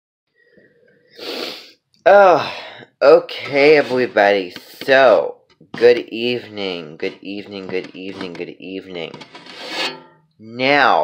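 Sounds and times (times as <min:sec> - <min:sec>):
sharp burst of breath: 0:01.1 - 0:01.8.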